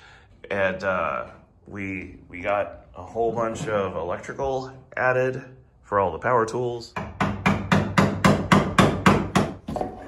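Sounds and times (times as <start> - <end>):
hammer tapping: 7.0 - 10.0.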